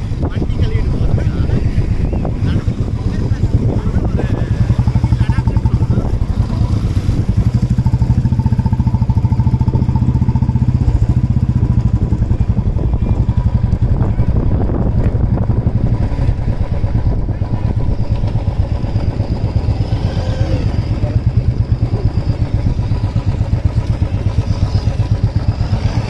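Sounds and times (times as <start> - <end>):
motorcycle engine running: 0.0 - 26.0.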